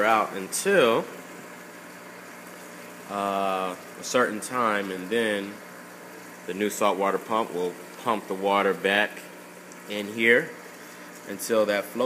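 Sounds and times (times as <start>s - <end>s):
aquarium pump hum: 0.0s - 12.0s
water flowing: 0.0s - 12.0s.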